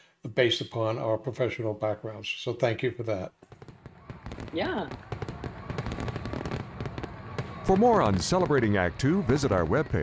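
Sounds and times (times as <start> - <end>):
fireworks crackling and popping: 3.4 - 10.0.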